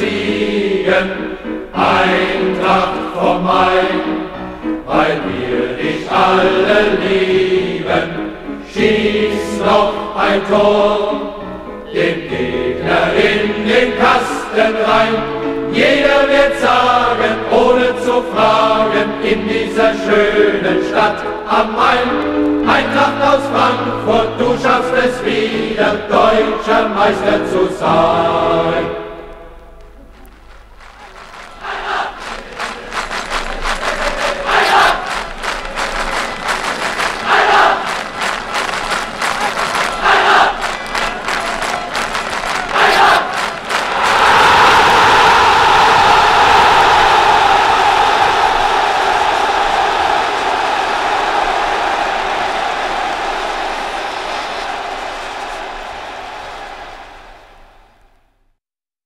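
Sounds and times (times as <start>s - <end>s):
crowd applauding: 29.9s - 58.0s
crowd cheering: 29.9s - 58.2s
crowd shouting: 31.0s - 58.0s.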